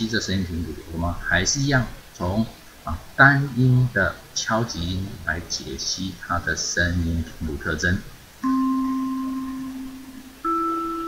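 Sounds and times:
vibraphone bar ringing: 8.4 - 11.0.

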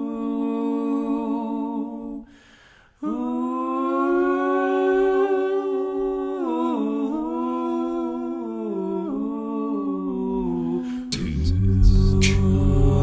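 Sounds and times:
person humming blues: 5.6 - 13.0.

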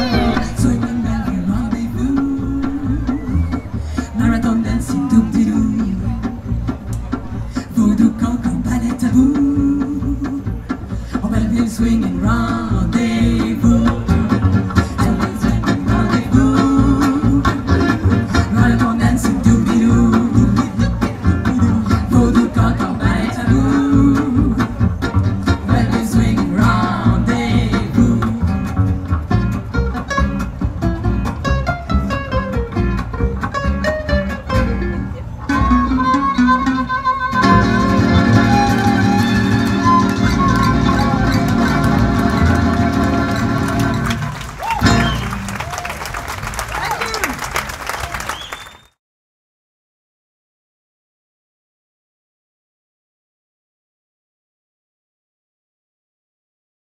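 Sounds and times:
violin: 0.0 - 1.8
acoustic guitars strumming: 0.0 - 45.5
upright bass: 0.0 - 47.6.

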